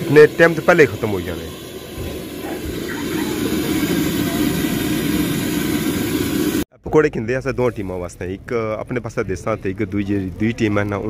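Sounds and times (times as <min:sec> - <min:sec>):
oil bubbling and sizzling: 0:00.0 - 0:06.7.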